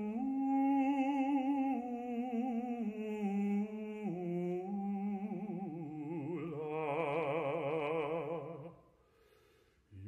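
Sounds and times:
baritone singing with vibrato: 0.0 - 8.8.

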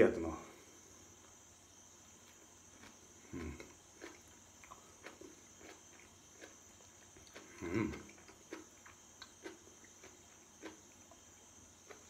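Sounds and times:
person chewing crunchy food: 2.2 - 12.0
low mouth sound: 3.2 - 3.8, 7.4 - 8.2.

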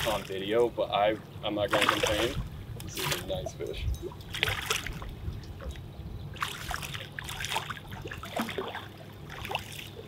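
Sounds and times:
fish splashing at the surface: 6.4 - 10.0.

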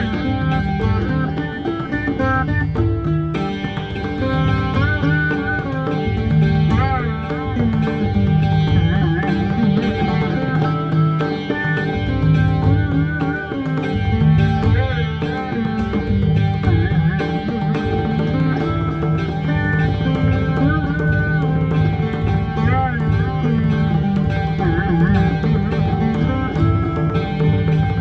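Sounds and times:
hand drum strokes: 0.0 - 28.0
plucked string melody gliding: 0.0 - 28.0.

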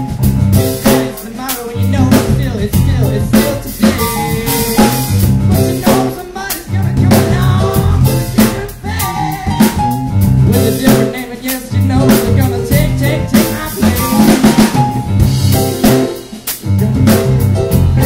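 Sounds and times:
drum kit beat: 0.0 - 18.0
live rock band playing: 0.0 - 18.0.

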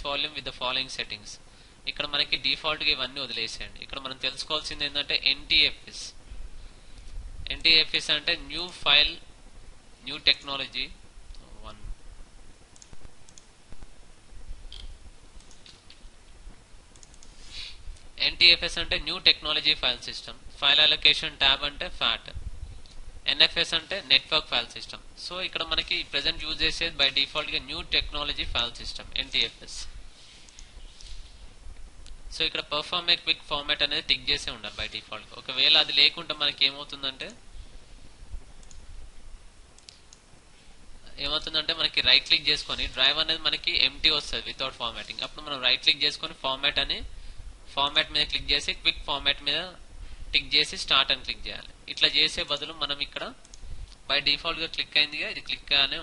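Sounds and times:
low room noise: 0.0 - 56.0
computer mouse clicking: 12.8 - 13.5, 14.7 - 16.0, 16.9 - 17.4, 38.6 - 38.8.

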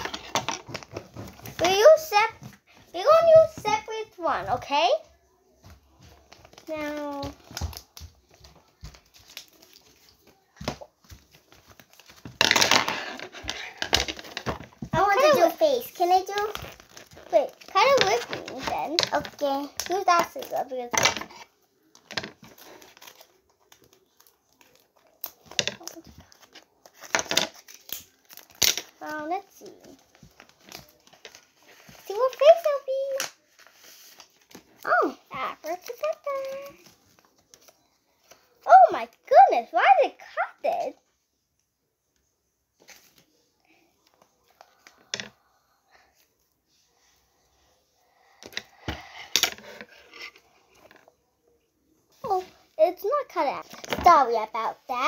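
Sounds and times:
paper rustling and crinkling: 5.9 - 39.4.

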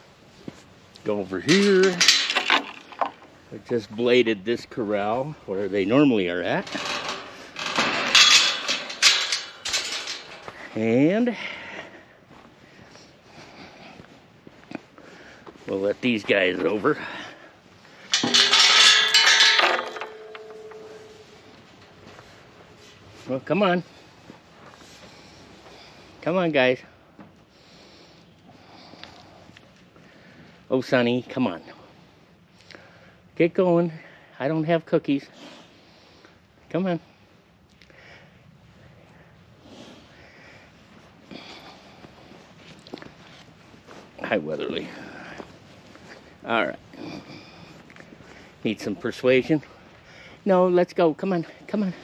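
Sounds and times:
metal gate and chain clanking: 1.2 - 4.0, 5.9 - 11.1, 17.9 - 22.4.

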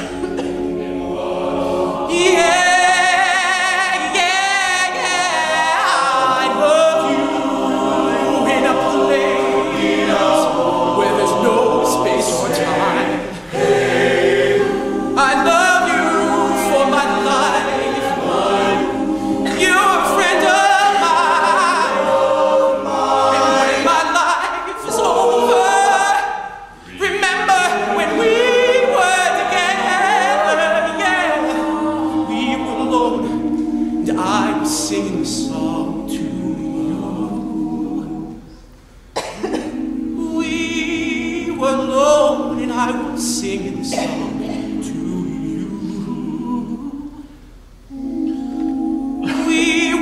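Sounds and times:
male group singing in harmony: 0.0 - 38.6, 39.2 - 50.0.

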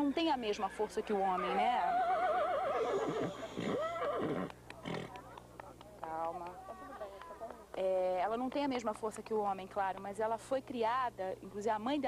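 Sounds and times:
horse whinnying: 0.6 - 5.1.

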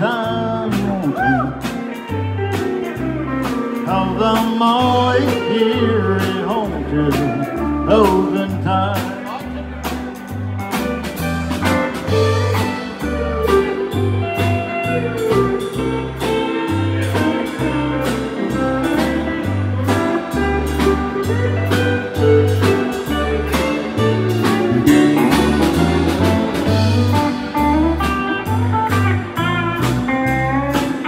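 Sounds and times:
bass line: 0.0 - 31.0
pedal steel guitar melody: 0.0 - 31.0
steady drum beat: 0.0 - 31.0.

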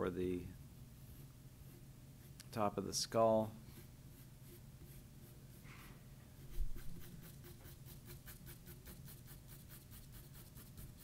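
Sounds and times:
pencil scratching on paper: 1.0 - 2.4, 3.6 - 5.8, 6.4 - 11.0.

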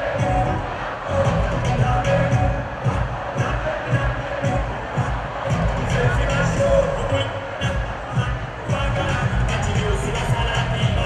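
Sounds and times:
large crowd noise: 0.0 - 11.0
loud live concert music: 0.0 - 11.0.

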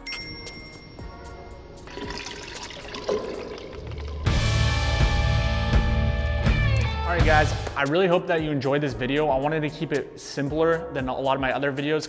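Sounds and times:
liquid pouring from glass bottle: 1.8 - 4.6
loud music with heavy bass: 4.3 - 7.8.

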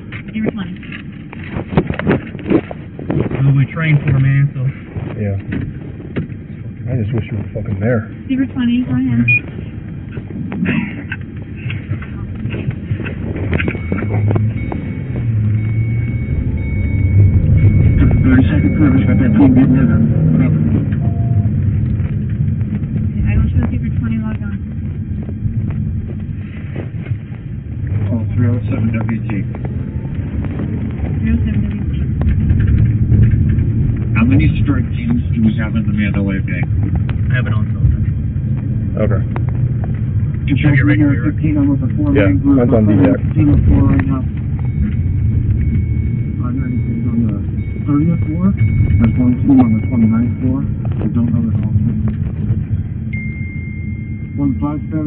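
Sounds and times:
low rumble: 0.0 - 55.0
muffled voices: 0.2 - 14.8, 26.0 - 32.9, 33.5 - 45.0, 45.6 - 53.1
thin high tone: 53.1 - 55.0.

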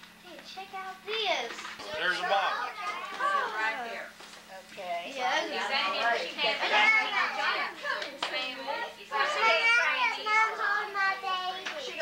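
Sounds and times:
children and adults talking: 0.3 - 12.0.

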